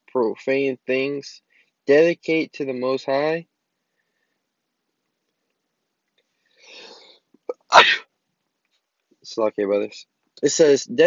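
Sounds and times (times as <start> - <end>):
man sneezing: 6.7 - 8.1.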